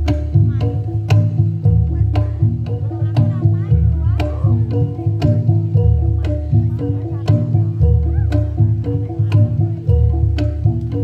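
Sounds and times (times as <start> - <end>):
gamelan music: 0.0 - 11.0.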